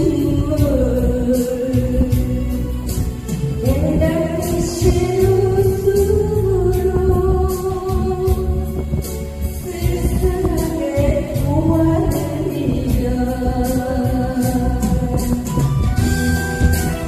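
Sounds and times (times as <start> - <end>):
woman singing into a microphone: 0.0 - 16.9
backing music: 0.0 - 17.0.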